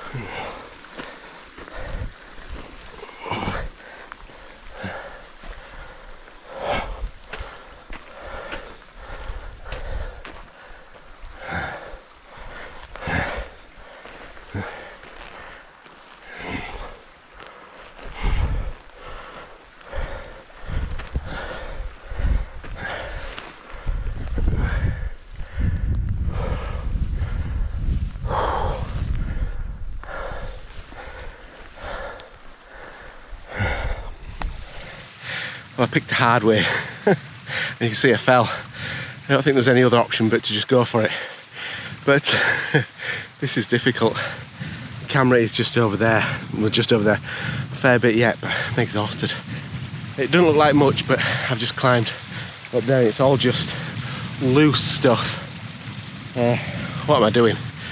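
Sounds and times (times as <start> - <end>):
footsteps scraping on loose stones: 0.0 - 25.6, 30.6 - 33.3
man breathing hard: 0.0 - 35.8, 38.5 - 39.2, 41.2 - 42.0, 47.2 - 47.7.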